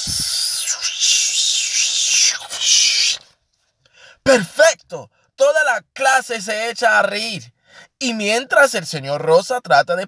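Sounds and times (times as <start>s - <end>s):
breathy hiss made by mouth: 0.0s - 3.3s.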